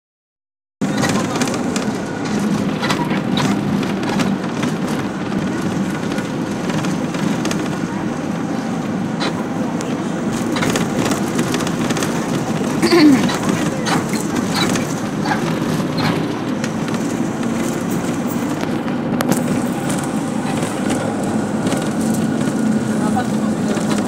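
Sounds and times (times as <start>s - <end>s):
bus engine and road rumble: 0.8s - 24.0s.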